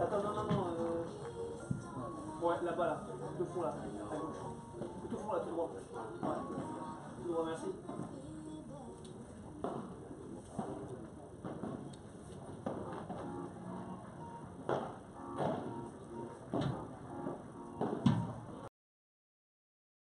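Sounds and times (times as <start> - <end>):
low murmuring voices: 0.0 - 18.7.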